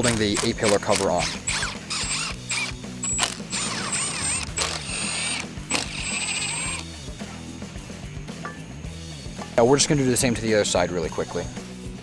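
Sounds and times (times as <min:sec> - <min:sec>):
impact driver whine: 0:00.0 - 0:06.9
sharp clicks: 0:00.0 - 0:06.9
background music: 0:00.0 - 0:12.0.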